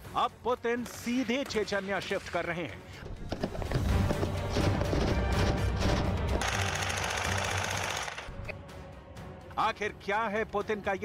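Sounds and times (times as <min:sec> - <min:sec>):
background music: 0:00.0 - 0:11.0
automatic gunfire rattle: 0:06.4 - 0:08.3.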